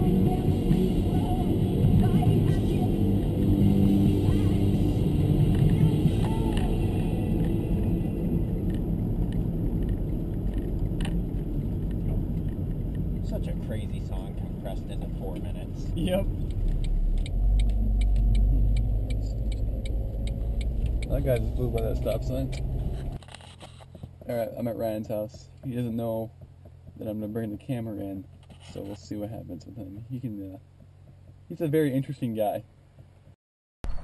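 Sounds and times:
voices: 0:00.0 - 0:08.2, 0:13.2 - 0:16.4, 0:17.2 - 0:22.7, 0:24.2 - 0:26.4
deep rumble: 0:00.0 - 0:34.0
van engine and road noise: 0:00.0 - 0:34.0.

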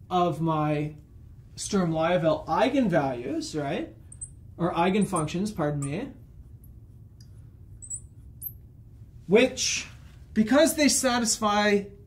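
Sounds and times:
low hum: 0:00.0 - 0:10.3.

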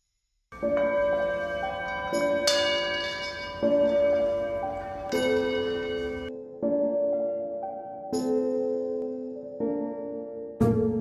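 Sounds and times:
singing bowls ringing: 0:00.6 - 0:06.3.

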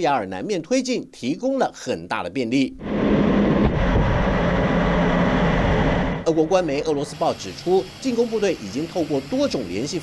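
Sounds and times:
low hum: 0:02.8 - 0:07.2
military jet in flight: 0:02.8 - 0:08.0.

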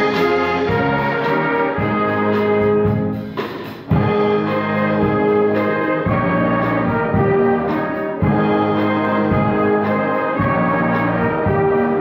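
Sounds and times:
wind band playing a carol: 0:00.0 - 0:12.0.

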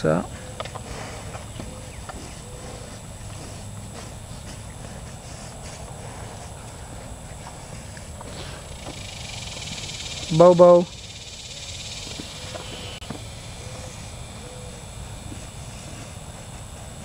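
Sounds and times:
high hiss: 0:00.0 - 0:17.0
low outdoor rumble: 0:00.0 - 0:17.0
dog's paws on concrete: 0:00.2 - 0:10.6
hooves tapping on concrete: 0:00.2 - 0:10.8, 0:12.0 - 0:13.9, 0:14.7 - 0:17.0.

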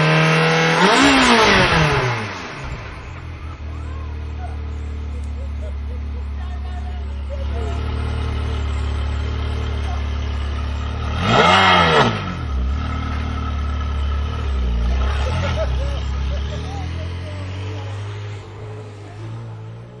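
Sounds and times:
car engine idling and revving: 0:00.0 - 0:20.0.

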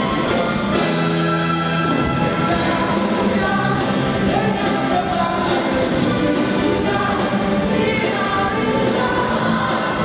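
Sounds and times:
rock band and orchestra playing: 0:00.0 - 0:10.0.

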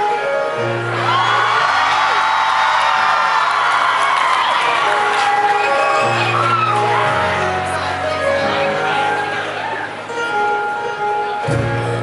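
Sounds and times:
keyboard chords: 0:00.0 - 0:02.4, 0:03.0 - 0:12.0
audience whooping and cheering: 0:00.7 - 0:10.1.

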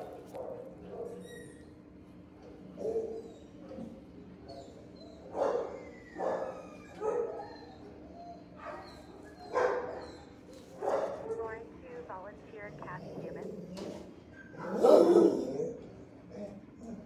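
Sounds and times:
dogs barking: 0:00.0 - 0:01.4, 0:02.6 - 0:11.4, 0:13.0 - 0:17.0
steady low hum: 0:10.3 - 0:17.0.

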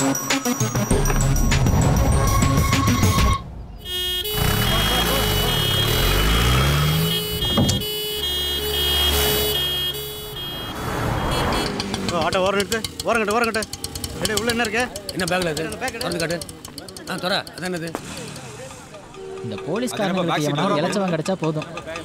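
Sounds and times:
vehicle engine passing: 0:04.2 - 0:07.9, 0:10.6 - 0:15.7.

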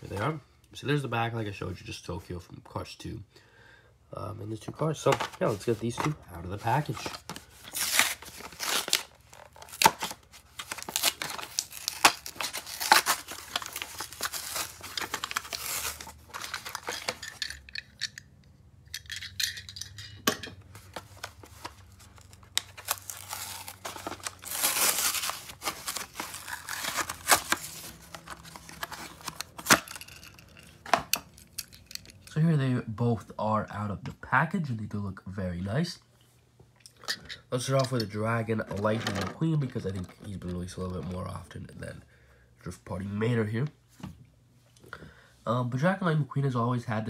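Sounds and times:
packaging rustling: 0:05.0 - 0:17.8, 0:20.8 - 0:32.3
cardboard tearing: 0:06.7 - 0:17.1, 0:21.4 - 0:30.0.

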